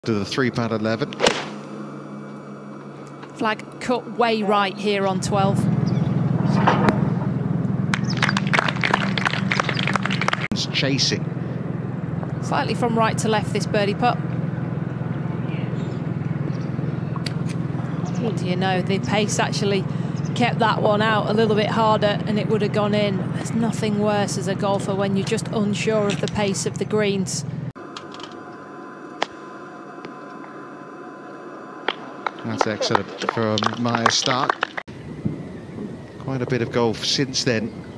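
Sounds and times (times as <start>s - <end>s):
outdoor background hiss: 0.0s - 6.4s, 10.6s - 37.9s
low hum: 0.0s - 37.9s
golf club striking ball: 1.1s - 1.7s.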